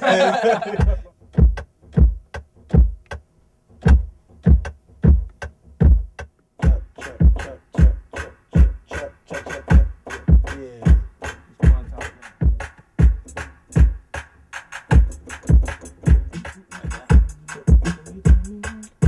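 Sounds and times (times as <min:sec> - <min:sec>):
kick drum: 0:00.7 - 0:03.2, 0:03.8 - 0:08.0, 0:08.6 - 0:08.9, 0:09.7 - 0:14.0, 0:14.9 - 0:18.6
snare and hi-hat clicks: 0:00.8 - 0:03.2, 0:03.8 - 0:19.0.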